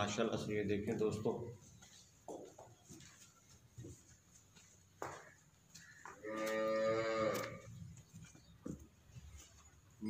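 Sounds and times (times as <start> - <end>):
cow mooing: 6.2 - 7.7.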